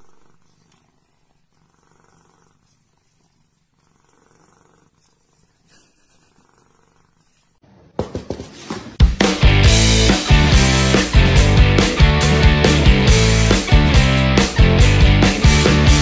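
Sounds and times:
cat purring: 0:00.0 - 0:07.6.

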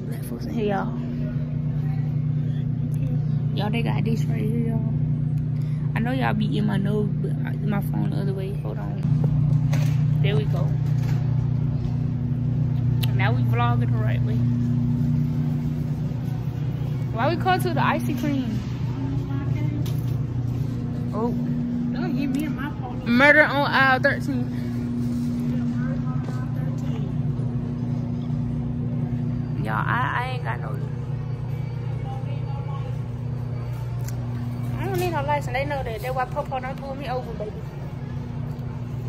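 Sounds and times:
distant voices: 0:00.0 - 0:39.0
steady low hum: 0:00.0 - 0:39.0.

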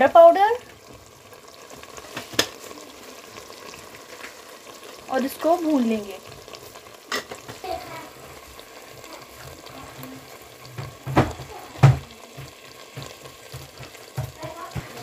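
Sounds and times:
vegetables sizzling in oil: 0:00.0 - 0:15.0.

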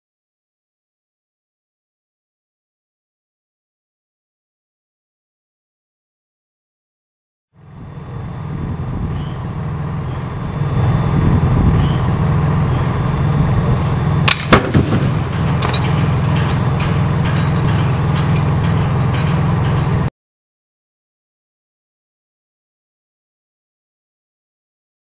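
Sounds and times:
steady low rumble: 0:07.6 - 0:20.1
heavy cask slamming onto pad: 0:14.3 - 0:18.4.

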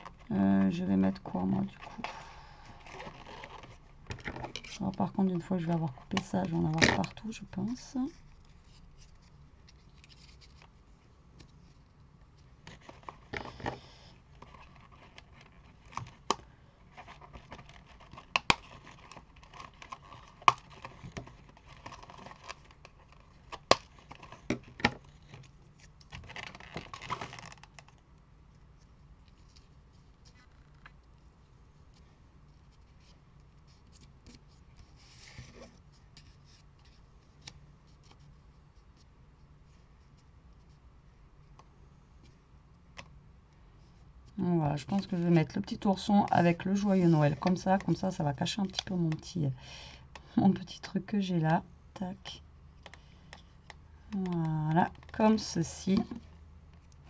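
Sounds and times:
paper rustling: 0:08.2 - 0:10.8.

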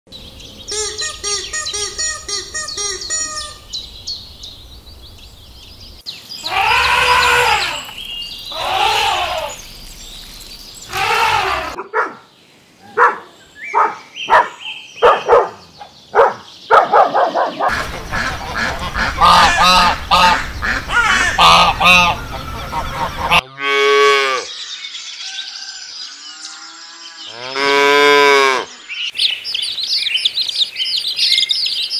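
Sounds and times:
rapid chirping calls: 0:00.5 - 0:11.8
long rising and falling calls: 0:06.2 - 0:11.8, 0:17.7 - 0:23.4
ducks quacking: 0:17.4 - 0:23.8.

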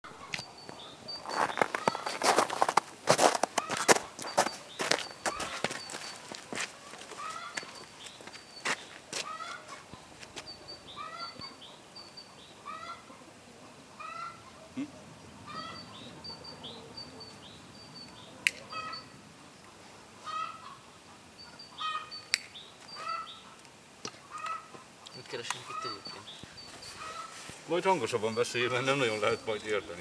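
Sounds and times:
hen squawking: 0:06.8 - 0:07.8, 0:09.2 - 0:09.8, 0:10.9 - 0:11.6, 0:12.6 - 0:13.3, 0:14.0 - 0:16.0, 0:18.6 - 0:19.1, 0:21.7 - 0:22.2, 0:23.0 - 0:23.4, 0:24.2 - 0:27.5.

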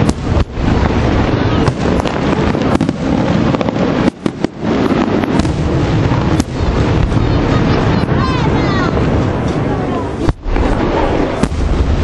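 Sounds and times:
firework shells bursting: 0:00.0 - 0:08.2.

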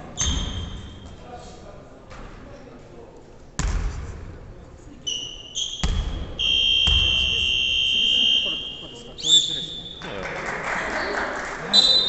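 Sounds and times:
basketball bouncing on wooden floor: 0:05.8 - 0:06.2
steady high whistle: 0:06.4 - 0:10.0.

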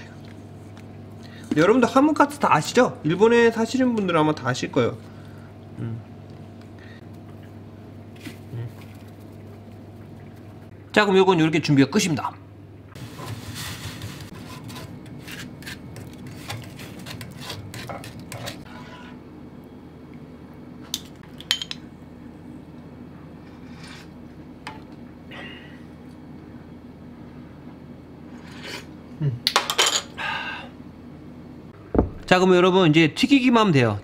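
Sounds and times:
steady low hum: 0:00.0 - 0:33.2
spatula scraping metal strainer: 0:13.1 - 0:19.2.

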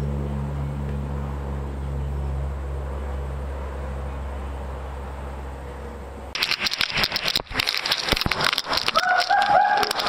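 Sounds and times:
water sloshing and splashing: 0:06.4 - 0:10.0.

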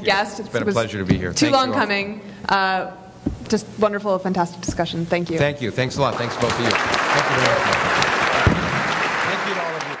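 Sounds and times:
low thump: 0:03.2 - 0:03.5
audience applauding: 0:05.9 - 0:10.0.

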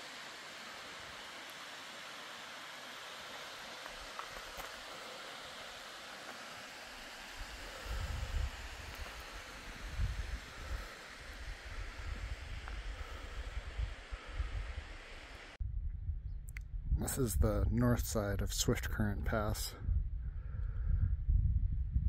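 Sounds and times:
waterfall rushing: 0:00.0 - 0:15.6
wind buffeting microphone: 0:07.3 - 0:15.0, 0:15.6 - 0:22.0.

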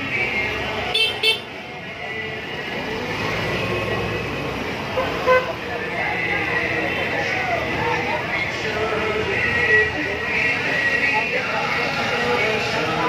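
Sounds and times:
crowd noise: 0:00.0 - 0:13.0
street traffic: 0:00.0 - 0:13.0
vehicle horns honking: 0:00.9 - 0:01.5, 0:04.9 - 0:05.6.

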